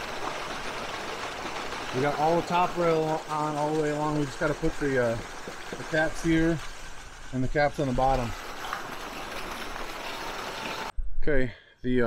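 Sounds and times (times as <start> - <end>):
water jet splashing into pool: 0.0 - 10.9.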